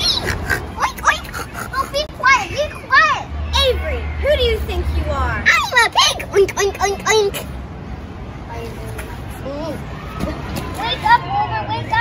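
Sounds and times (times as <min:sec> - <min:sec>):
children's excited calls: 0:00.0 - 0:07.6.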